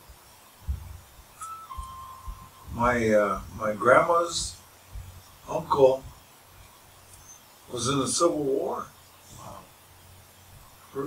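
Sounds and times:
soft low bumps: 0.0 - 7.2
high whistle-like tone: 1.3 - 3.4.

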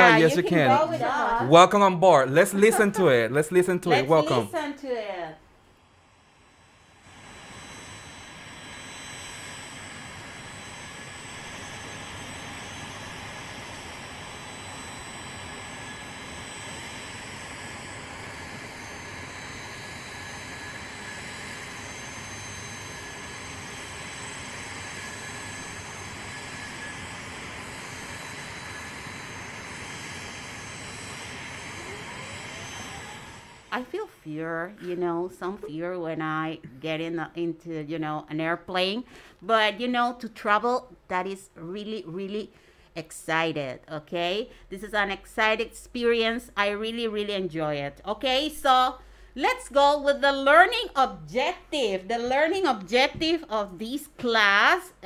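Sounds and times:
jet airliner engine rushing: 6.7 - 33.9.

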